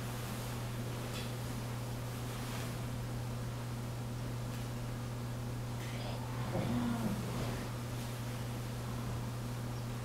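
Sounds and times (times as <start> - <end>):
room hiss: 0.0 - 10.0
steady low hum: 0.0 - 10.0
faint rustles: 6.0 - 9.3.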